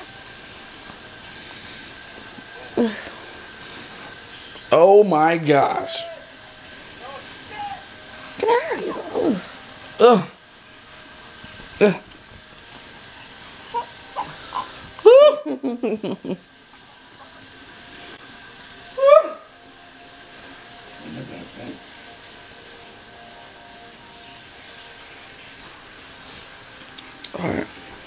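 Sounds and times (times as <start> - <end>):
steady background hiss: 0.0 - 28.0
baby crying: 5.6 - 6.4.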